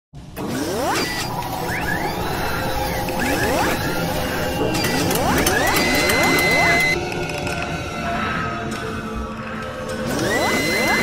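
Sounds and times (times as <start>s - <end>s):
rising mechanical whirs: 0.2s - 7.4s, 9.9s - 11.0s
clicks: 0.4s - 7.8s.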